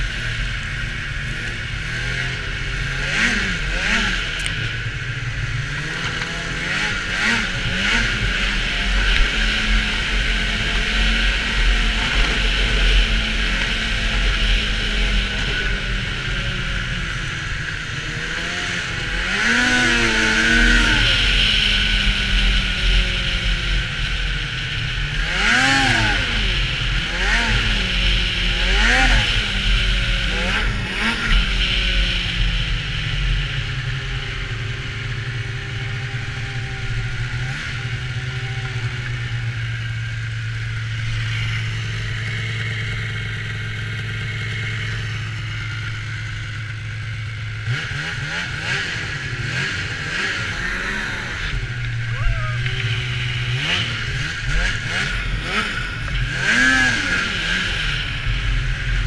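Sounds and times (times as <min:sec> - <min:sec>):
snowmobile engine revving: 0:00.0 - 0:59.0.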